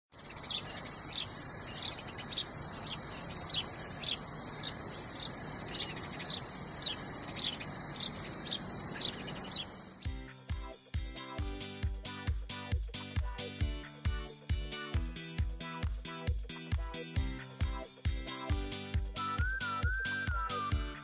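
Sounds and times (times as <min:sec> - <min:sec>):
high-pitched insect chorus: 0:00.2 - 0:10.1.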